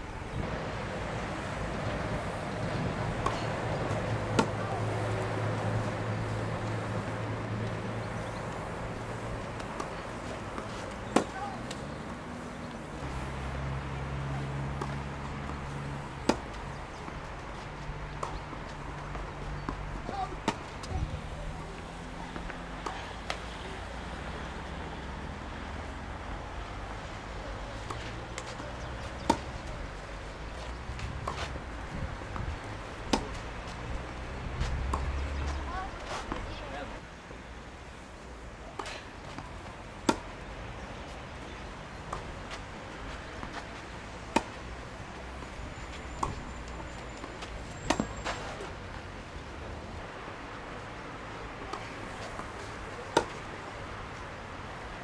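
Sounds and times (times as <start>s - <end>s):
tennis racket striking ball: 3.2s - 4.7s, 9.5s - 11.8s, 14.7s - 17.2s, 27.8s - 29.7s, 32.3s - 33.4s, 34.6s - 36.6s, 47.2s - 48.8s, 51.7s - 53.5s.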